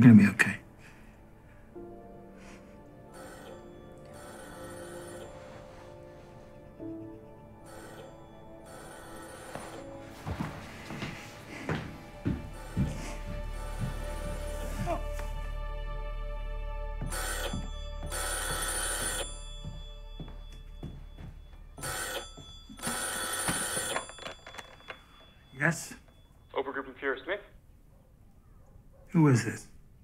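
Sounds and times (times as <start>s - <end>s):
soft sustained music: 0.0s - 22.9s
telephone bell ringing: 3.1s - 6.8s, 7.6s - 11.0s, 17.1s - 27.0s.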